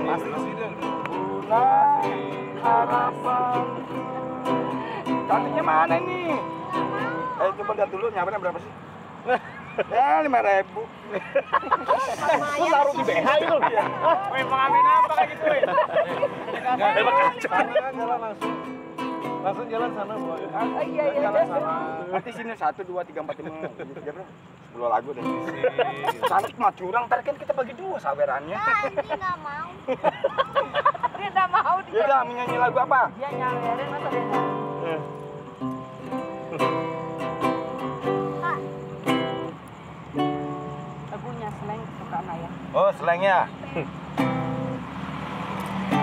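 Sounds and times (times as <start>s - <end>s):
acoustic guitar: 0.0s - 46.0s
people talking: 9.3s - 18.4s, 19.5s - 35.0s, 41.1s - 43.9s.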